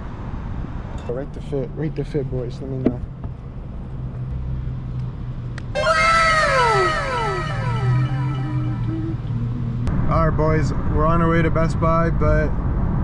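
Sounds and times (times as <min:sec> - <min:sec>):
sliding pitched tones: 0:05.8 - 0:09.9.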